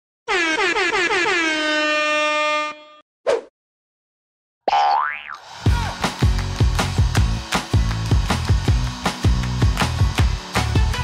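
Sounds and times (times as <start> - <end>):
short swish: 3.3 - 3.5
wobbling boing tone: 4.7 - 5.4
music with steady beat: 5.7 - 11.0.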